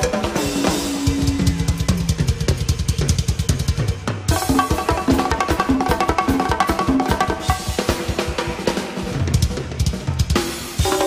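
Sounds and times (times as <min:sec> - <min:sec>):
fast busy drumming: 0:00.0 - 0:11.0
live band music: 0:00.0 - 0:11.0.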